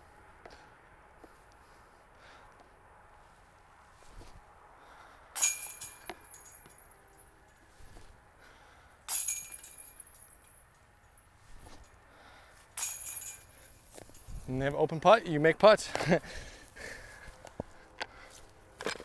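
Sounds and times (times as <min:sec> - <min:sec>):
discs clinking basket chains: 0:05.3 - 0:08.0, 0:09.0 - 0:12.0, 0:12.6 - 0:15.2.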